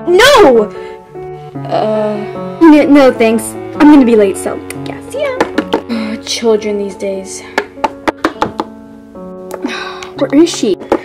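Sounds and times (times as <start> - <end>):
soft instrumental background music: 0.0 - 11.0
plastic toy knocking on desk: 5.4 - 5.9, 7.6 - 8.7.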